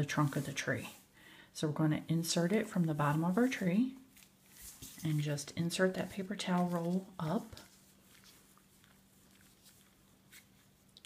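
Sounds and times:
hands rustling cardboard: 0:02.4 - 0:10.8.

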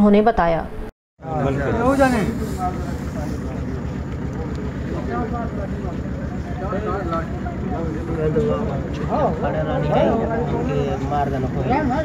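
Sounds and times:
faint voices: 0:01.2 - 0:12.0
motor throbbing: 0:01.2 - 0:12.0.

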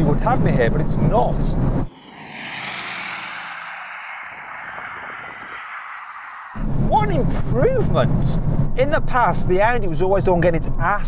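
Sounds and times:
transition whoosh: 0:01.8 - 0:07.6.

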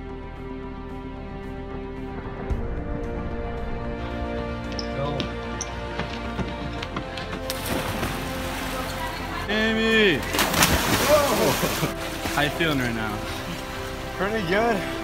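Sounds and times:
background music: 0:00.0 - 0:15.0
water churning: 0:07.4 - 0:15.0
loud splash into pool: 0:07.5 - 0:09.0, 0:10.3 - 0:12.4
person yelling: 0:11.0 - 0:11.5.

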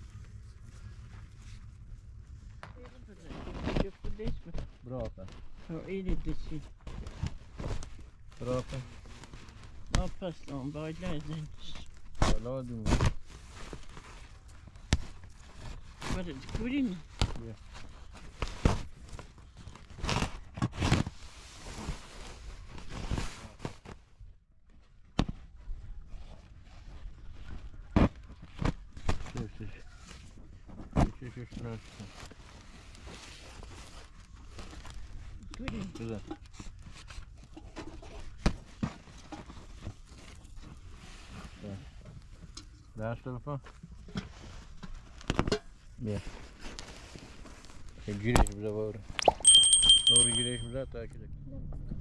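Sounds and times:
plastic tarp rustling and crinkling: 0:03.0 - 0:24.0, 0:31.7 - 0:35.3, 0:46.1 - 0:48.0.

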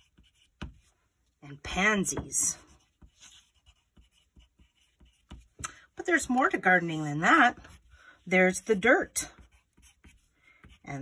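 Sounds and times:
pencil scratching on paper: 0:00.0 - 0:01.0, 0:01.7 - 0:11.0.

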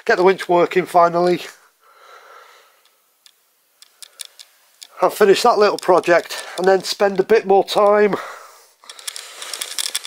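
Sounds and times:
person speaking: 0:00.0 - 0:01.7, 0:04.8 - 0:08.5
camera handling noise: 0:03.3 - 0:05.0.

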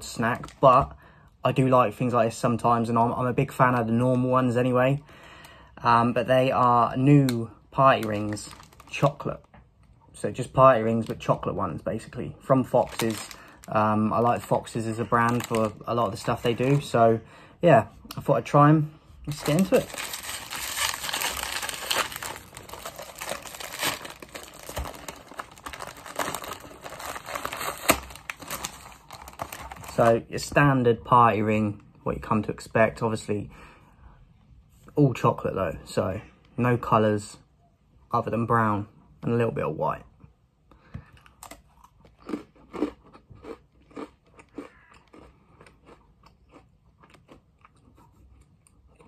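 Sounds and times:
biscuit packet crinkling: 0:07.2 - 0:10.0, 0:12.6 - 0:17.0, 0:19.3 - 0:30.2
packet snapping: 0:19.3 - 0:30.1
crunching and chewing: 0:41.0 - 0:49.0.

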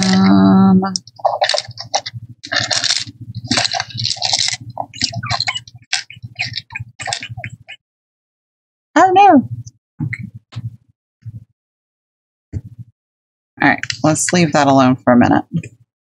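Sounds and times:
paper rustling: 0:01.0 - 0:07.6.

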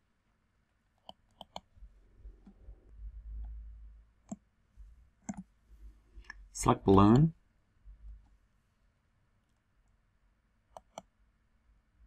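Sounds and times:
computer mouse clicks: 0:01.0 - 0:01.7, 0:04.2 - 0:04.4, 0:05.2 - 0:05.5, 0:10.7 - 0:11.1
faint low rumble: 0:01.6 - 0:08.6.

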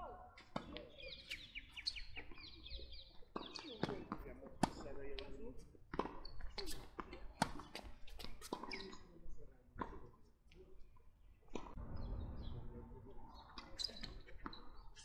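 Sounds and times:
tennis ball bouncing on court: 0:00.4 - 0:01.5, 0:03.3 - 0:09.0, 0:09.8 - 0:10.2.

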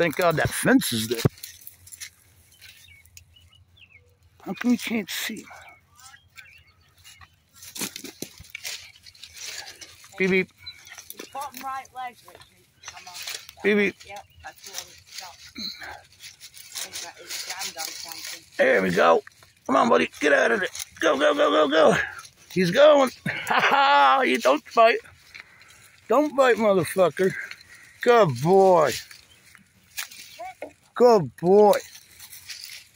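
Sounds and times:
rustling in dry leaves: 0:00.0 - 0:32.9
faint bird chirps: 0:01.3 - 0:19.7
quiet talking: 0:04.1 - 0:32.8.

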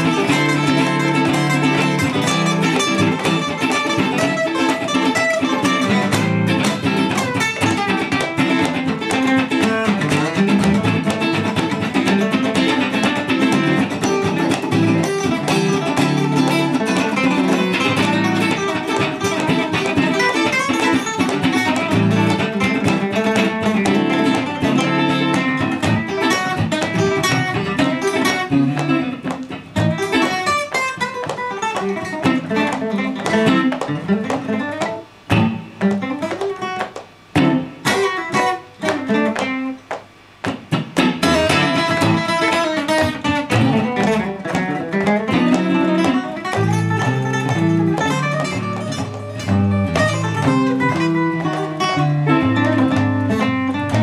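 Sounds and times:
acoustic guitar played fast: 0:00.0 - 0:54.0
electric guitar playing: 0:00.0 - 0:54.0.

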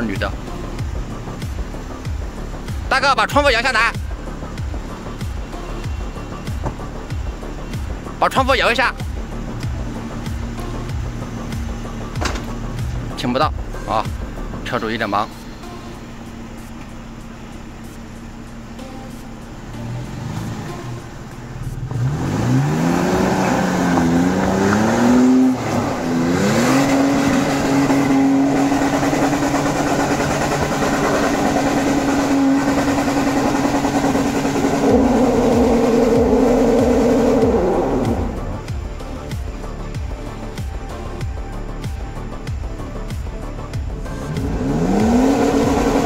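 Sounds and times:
engine revving hard: 0:21.8 - 0:38.6, 0:44.2 - 0:46.0.

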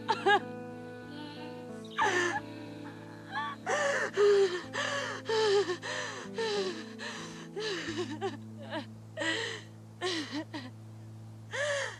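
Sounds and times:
woman sobbing: 0:00.0 - 0:00.5, 0:02.0 - 0:10.8.

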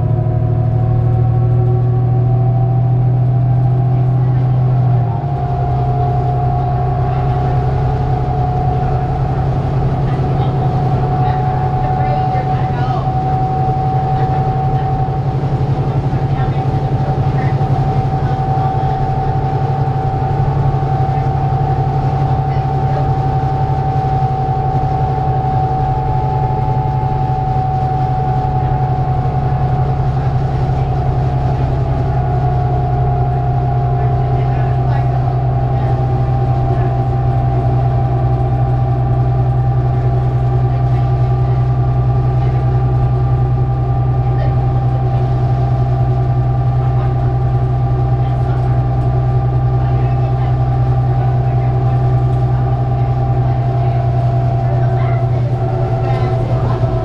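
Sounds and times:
bus engine low drone: 0:00.0 - 0:57.0
steady whine: 0:00.0 - 0:57.0.

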